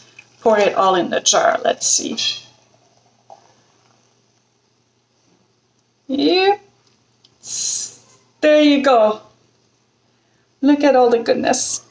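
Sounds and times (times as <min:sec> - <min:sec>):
thick liquid pouring into jar: 0:00.0 - 0:00.5.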